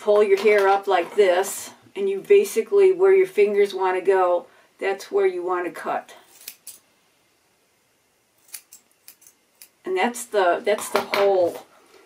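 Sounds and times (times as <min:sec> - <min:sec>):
scissors snipping hair: 0:06.3 - 0:06.8, 0:08.4 - 0:09.8.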